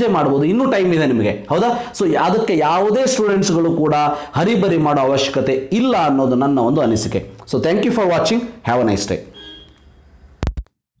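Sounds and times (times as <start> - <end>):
voice: 0.0 - 9.3.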